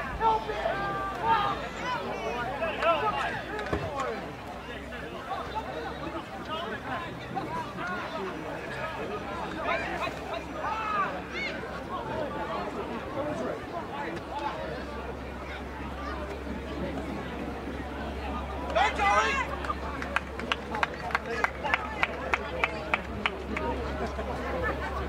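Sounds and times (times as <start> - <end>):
people calling out and chatting: 0.0 - 25.0.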